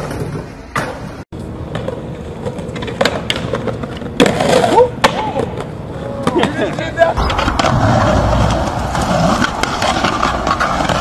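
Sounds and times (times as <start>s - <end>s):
skateboard clacking on concrete: 0.0s - 7.0s
skateboard wheels rolling: 0.0s - 11.0s.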